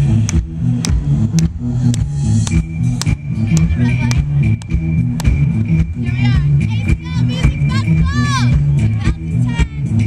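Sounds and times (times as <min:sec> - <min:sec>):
bass line: 0:00.0 - 0:10.0
drum beat: 0:00.2 - 0:10.0.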